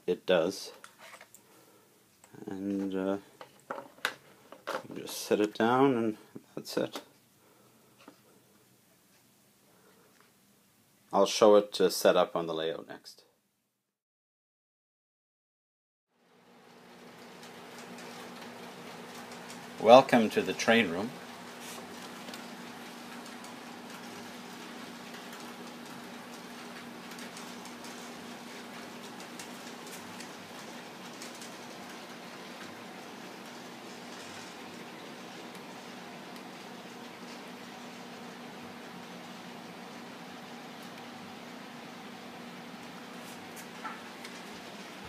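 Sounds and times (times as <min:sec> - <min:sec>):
model trains whirring: 0:16.4 - 0:45.0.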